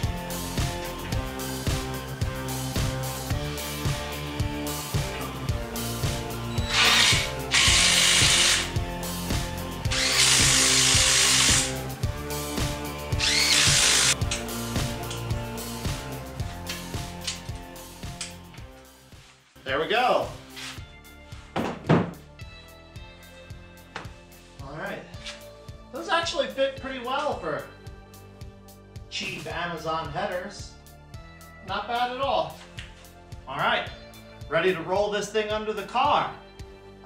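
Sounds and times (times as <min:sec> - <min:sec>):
background music with beat: 0:00.0 - 0:37.0
cordless drill running: 0:06.6 - 0:08.7, 0:09.9 - 0:11.8, 0:13.2 - 0:14.2.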